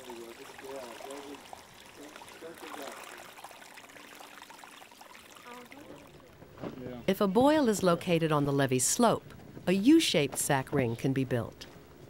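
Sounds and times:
faint trickle of water: 0.0 - 7.0.

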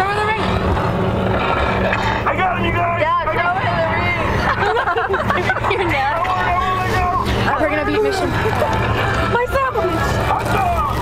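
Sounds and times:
bus engine and road drone: 0.0 - 11.0
passengers talking and calling out: 0.0 - 11.0.

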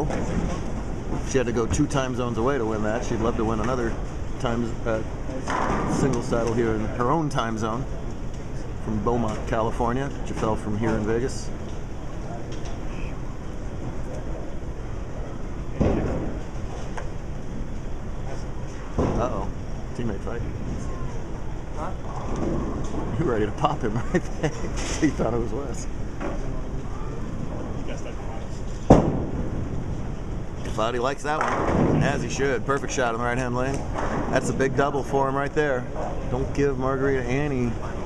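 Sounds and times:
bowling alley machine noise: 0.0 - 38.0
bowling ball rolling: 5.3 - 6.6, 20.6 - 23.6, 28.7 - 32.5.

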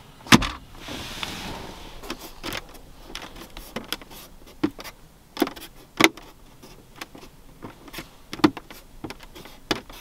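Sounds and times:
soft rustling: 0.6 - 10.0.

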